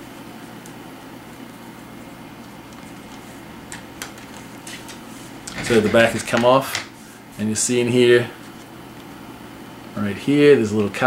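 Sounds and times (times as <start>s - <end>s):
room hiss: 0.0s - 11.0s.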